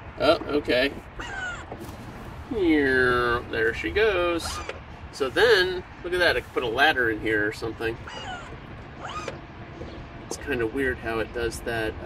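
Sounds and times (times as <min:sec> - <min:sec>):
seat mechanism squeaking: 0:04.2 - 0:04.9, 0:07.9 - 0:10.1.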